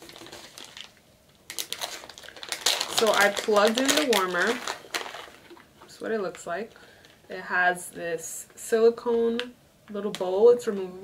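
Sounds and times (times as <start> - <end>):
plastic pouch crinkling: 0.0 - 7.2.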